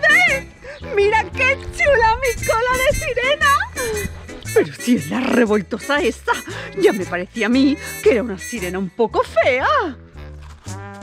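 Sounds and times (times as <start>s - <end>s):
woman's wavering voice: 0.0s - 4.1s
background music with low bass: 0.0s - 11.0s.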